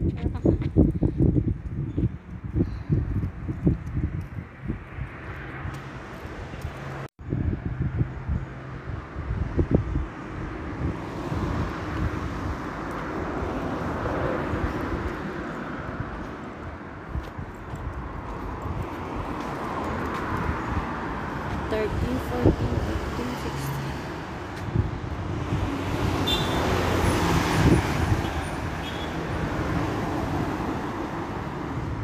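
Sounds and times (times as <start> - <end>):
street traffic noise: 0.0 - 32.0
wind buffeting microphone: 0.0 - 32.0.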